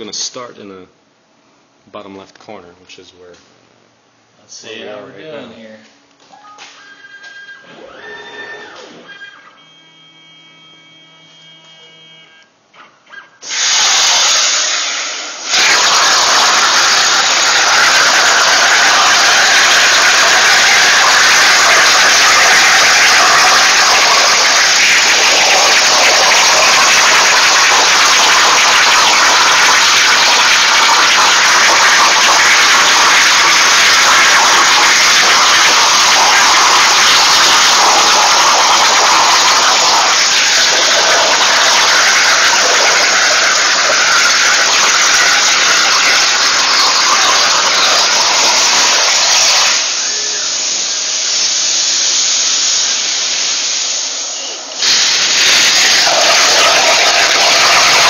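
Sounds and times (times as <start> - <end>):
plasma torch hissing: 13.4 - 58.0.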